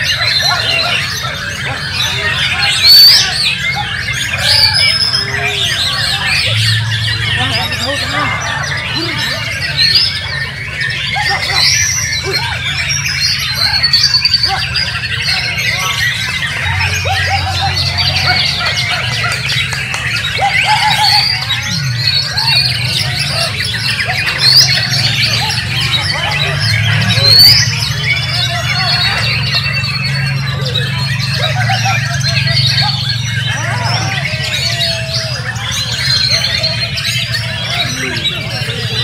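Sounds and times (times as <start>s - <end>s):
birds singing: 0.0s - 39.0s.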